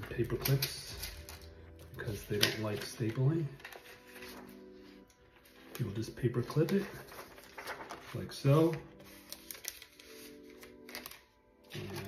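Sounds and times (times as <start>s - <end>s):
paper and plastic sleeve rustling: 0.0s - 12.0s
soft background music: 0.0s - 12.0s.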